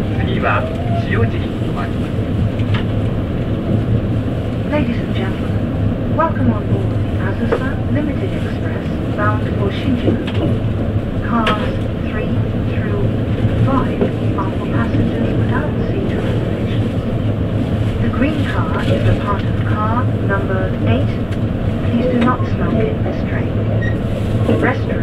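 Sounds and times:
people's voices: 0.0s - 2.2s, 4.6s - 17.2s, 17.9s - 23.8s, 24.4s - 25.0s
train rumbling along track: 0.0s - 25.0s.

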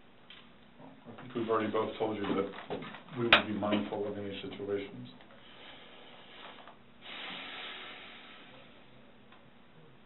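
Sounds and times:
faint hiss: 5.4s - 9.2s.

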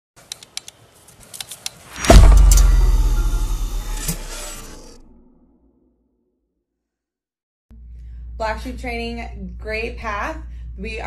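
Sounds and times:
deep cinematic boom with rumble: 2.0s - 5.0s.

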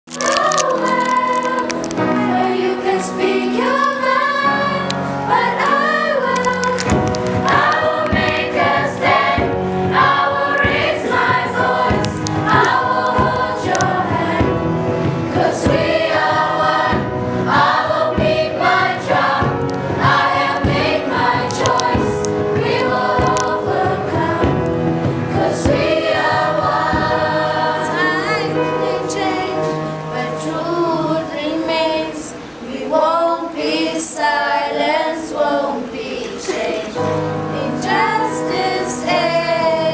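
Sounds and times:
piano accompaniment: 0.0s - 39.9s
children's choir singing: 0.1s - 39.9s.

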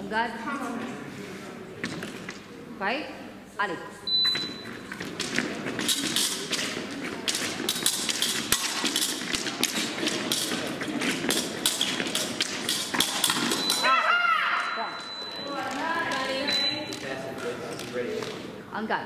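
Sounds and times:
fencers' footwork taps and thuds: 4.3s - 13.8s.

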